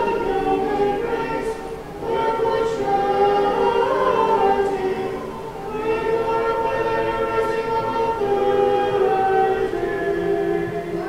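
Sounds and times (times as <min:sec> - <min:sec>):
church choir singing a cappella: 0:00.0 - 0:11.0.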